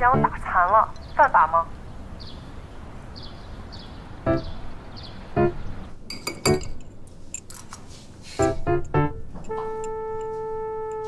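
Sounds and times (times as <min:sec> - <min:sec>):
bright clinks: 0:06.1 - 0:07.8.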